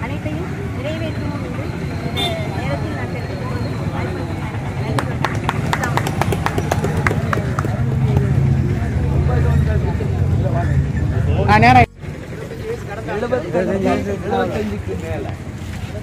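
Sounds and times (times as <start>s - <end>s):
street noise rumble: 0.0s - 16.0s.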